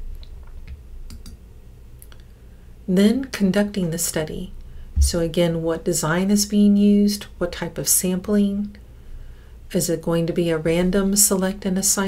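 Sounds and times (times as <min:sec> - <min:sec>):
low steady hum: 0:00.0 - 0:12.0
faint sharp clicks: 0:00.2 - 0:01.4
woman's voice: 0:02.9 - 0:08.8, 0:09.7 - 0:12.0.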